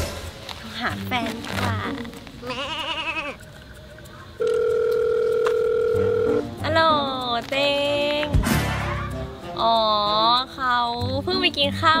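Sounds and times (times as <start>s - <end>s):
telephone ringing tone: 4.4s - 6.5s.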